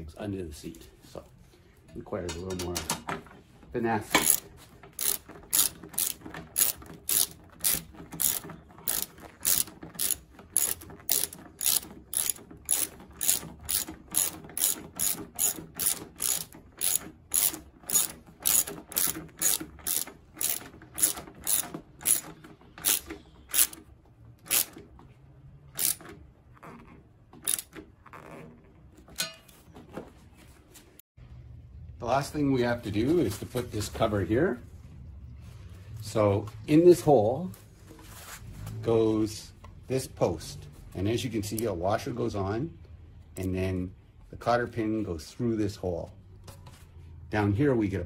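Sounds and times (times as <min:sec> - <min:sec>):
socket ratchet clicking: 0:05.0 - 0:23.8, 0:24.4 - 0:24.8, 0:25.8 - 0:26.1, 0:27.4 - 0:27.7.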